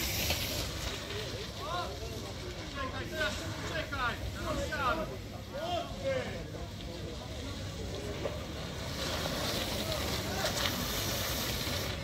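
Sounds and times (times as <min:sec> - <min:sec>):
bicycles riding past on shale: 0:00.0 - 0:12.0
scattered voices: 0:00.4 - 0:12.0.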